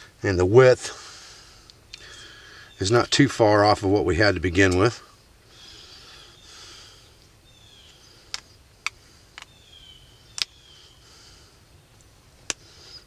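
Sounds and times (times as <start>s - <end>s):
birds chirping faintly: 0.0s - 13.0s.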